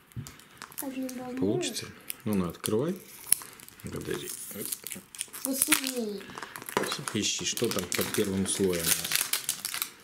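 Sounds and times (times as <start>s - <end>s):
plastic wrapper crinkling: 0.0s - 10.0s.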